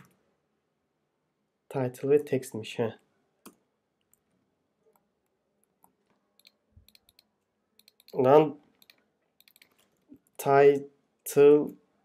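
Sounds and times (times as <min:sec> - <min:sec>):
computer keyboard keystrokes: 0:05.8 - 0:08.2, 0:08.8 - 0:09.9.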